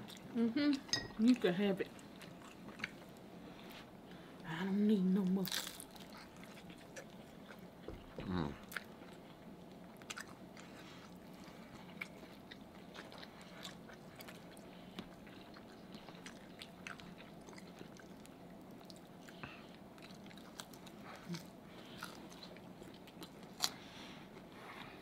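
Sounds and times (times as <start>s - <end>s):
chewing and crunching: 0.0s - 3.9s, 5.2s - 25.0s.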